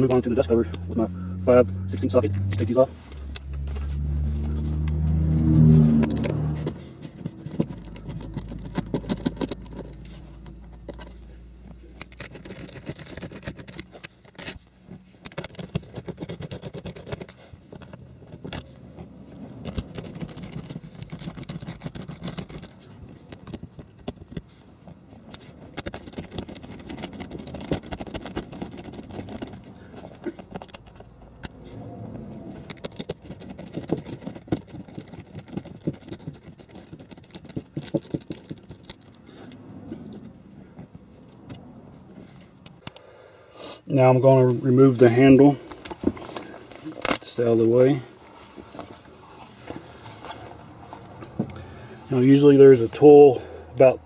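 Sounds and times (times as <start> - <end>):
vehicle engine hum: 0.0 - 54.0.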